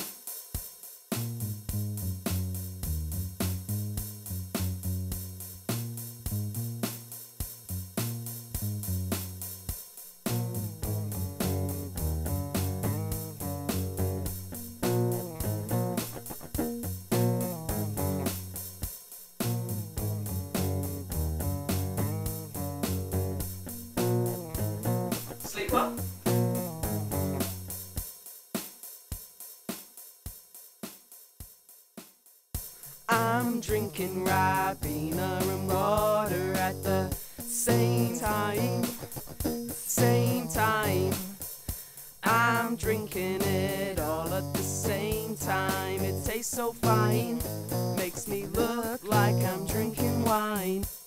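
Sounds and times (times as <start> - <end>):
bass: 1.1 - 28.0, 32.8 - 41.6, 42.2 - 51.0
ticking beat: 1.2 - 28.0, 32.6 - 51.0
plucked guitar: 11.4 - 18.4, 37.7 - 41.4.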